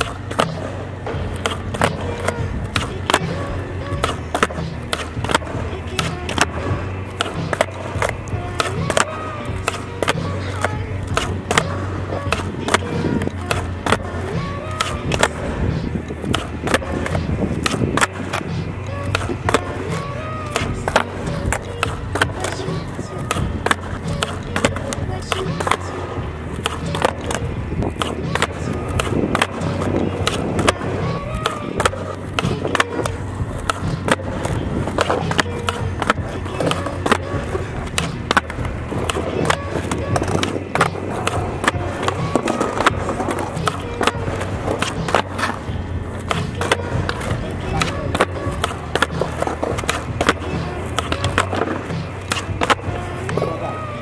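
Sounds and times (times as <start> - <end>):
skateboard tail pops: 0.0 - 53.8
music with vocals: 0.0 - 54.0
skateboard clacks and landings: 0.0 - 54.0
skateboard wheels rolling: 0.0 - 54.0.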